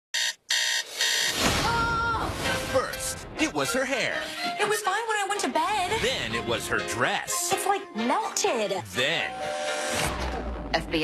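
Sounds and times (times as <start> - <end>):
alarm clock beeping: 0.1 - 1.4.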